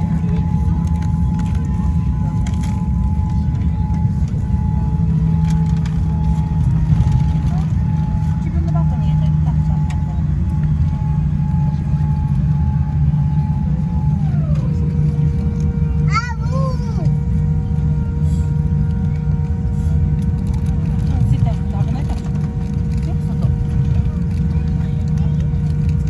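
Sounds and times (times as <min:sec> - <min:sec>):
steady low cabin rumble: 0:00.0 - 0:26.0.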